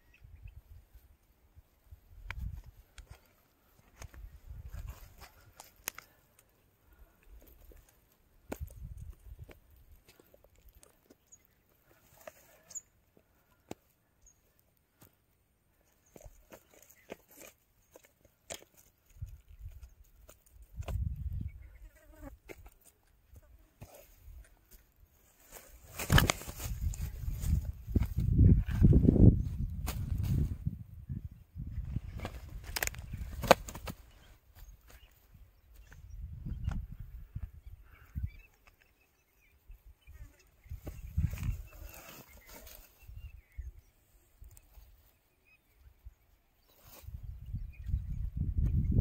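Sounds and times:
wind rumble on microphone: 0:20.6 - 0:21.7, 0:26.2 - 0:33.4, 0:35.4 - 0:38.4, 0:40.6 - 0:41.8, 0:47.0 - 0:49.0.

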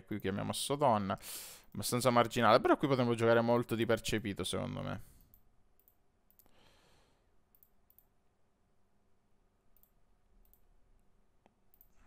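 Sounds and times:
computer mouse clicks: 0:05.2 - 0:06.5, 0:07.5 - 0:08.1, 0:09.7 - 0:10.7, 0:11.4 - 0:12.0
soft breath: 0:06.4 - 0:07.4.

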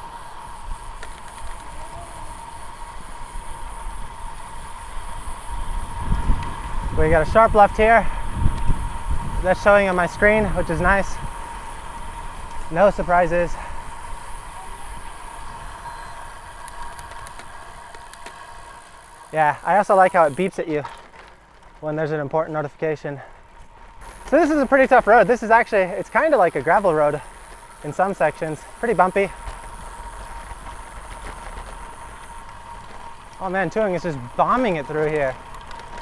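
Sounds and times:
bicycle tyres on pavement: 0:00.0 - 0:36.0
wind rush on microphone: 0:03.4 - 0:18.2
faint ticks: 0:14.9 - 0:19.3.

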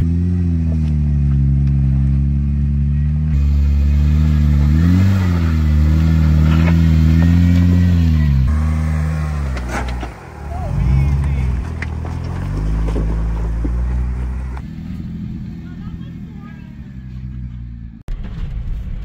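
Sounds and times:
engine droning under load: 0:00.0 - 0:18.1.

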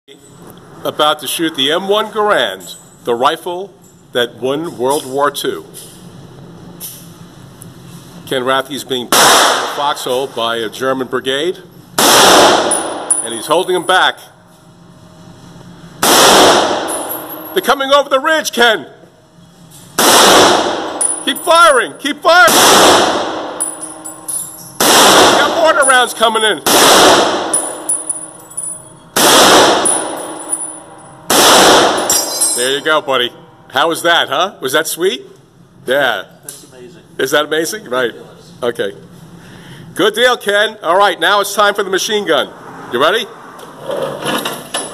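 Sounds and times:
low background hum and hiss: 0:00.1 - 0:44.9
rifle shots echoing indoors: 0:09.1 - 0:09.9, 0:12.0 - 0:13.3, 0:16.0 - 0:17.5, 0:20.0 - 0:21.2, 0:22.4 - 0:28.3, 0:29.1 - 0:32.6
high metallic ringing: 0:12.7 - 0:14.3, 0:16.8 - 0:17.8, 0:20.9 - 0:22.0, 0:23.4 - 0:24.8, 0:25.5 - 0:26.6, 0:27.4 - 0:29.2, 0:29.8 - 0:31.3, 0:31.9 - 0:34.1.

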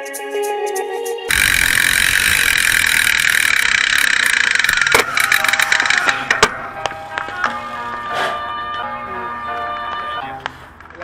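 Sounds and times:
sharp clicks and knocks: 0:01.3 - 0:06.6.

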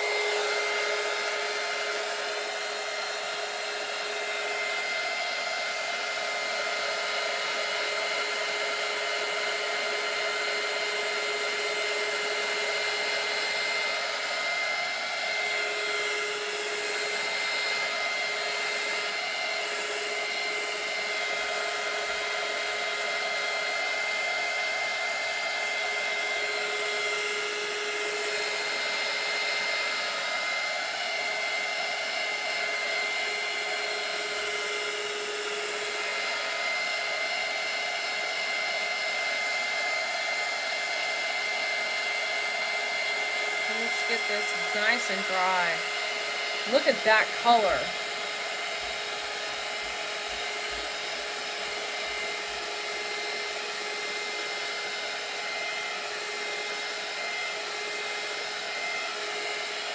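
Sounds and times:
heat gun fan whirring: 0:00.0 - 0:59.9.

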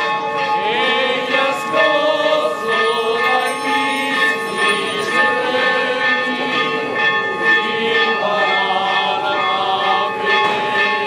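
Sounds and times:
church bells pealing: 0:00.0 - 0:11.0.

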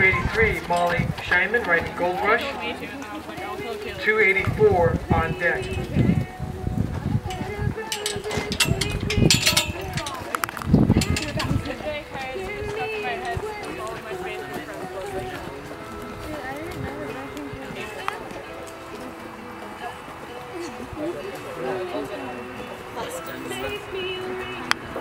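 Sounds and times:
horse hoofbeats on dirt: 0:00.0 - 0:23.3
faint background music: 0:00.0 - 0:25.0
voices: 0:00.0 - 0:25.0.

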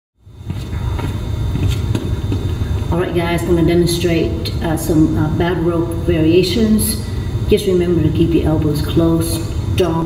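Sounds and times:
low room rumble: 0:00.2 - 0:10.0.

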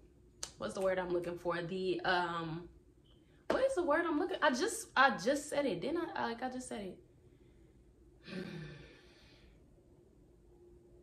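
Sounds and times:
woman sighing: 0:08.2 - 0:09.3.

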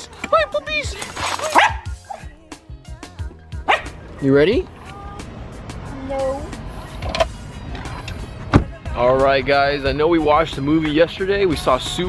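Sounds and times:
small dogs yapping: 0:01.5 - 0:02.0.

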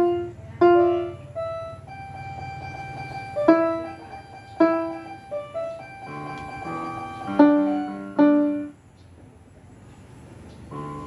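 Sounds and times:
electronic keyboard single notes: 0:00.0 - 0:08.7.

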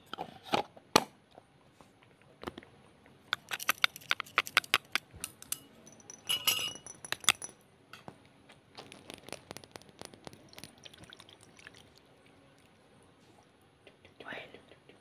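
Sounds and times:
utensil clinking against glass: 0:05.4 - 0:07.6.

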